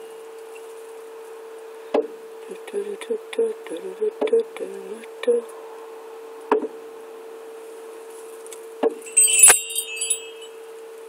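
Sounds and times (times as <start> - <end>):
steady hum: 1.3 - 10.6
metal chimes ringing: 9.0 - 10.7.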